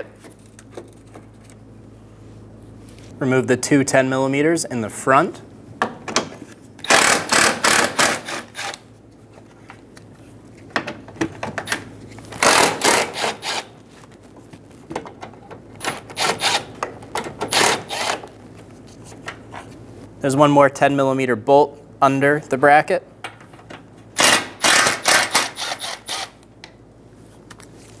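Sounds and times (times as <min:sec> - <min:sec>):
cordless ratchet whirring: 0:16.0 - 0:16.7, 0:17.5 - 0:18.2, 0:24.2 - 0:26.4.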